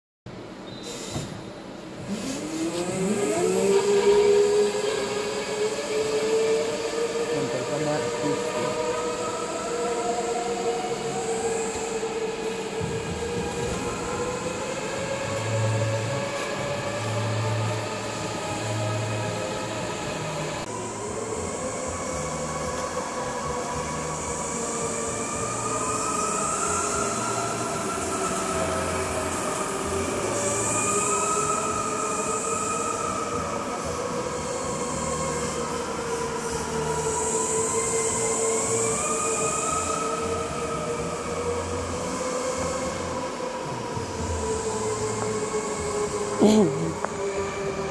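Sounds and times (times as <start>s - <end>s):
go-kart motors whining: 0.4s - 47.9s.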